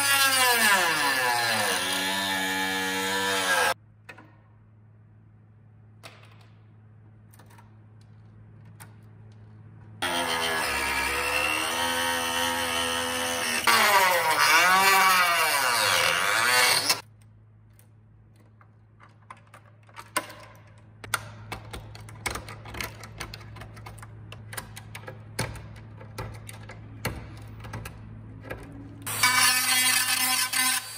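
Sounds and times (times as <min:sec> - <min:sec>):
rotary tool grinding plastic: 0:11.9 - 0:17.0.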